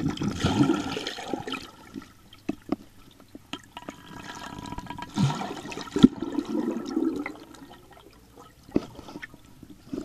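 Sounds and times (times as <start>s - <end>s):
water gurgling underwater: 0.0s - 2.1s, 3.7s - 8.6s.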